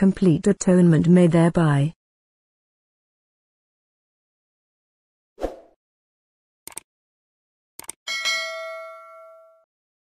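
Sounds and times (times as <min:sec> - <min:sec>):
notification bell double ding: 0:08.1 - 0:09.7.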